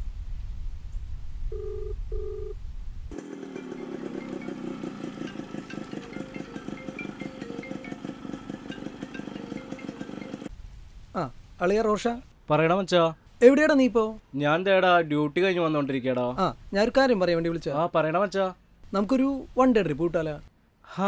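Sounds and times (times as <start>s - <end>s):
phone ringing tone: 1.5s - 2.6s, 3.4s - 10.5s
motorcycle engine idling: 3.1s - 10.5s.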